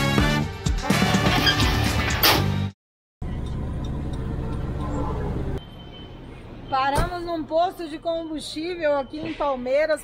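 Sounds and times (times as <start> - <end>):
vehicle engine and road noise: 3.2 - 10.0.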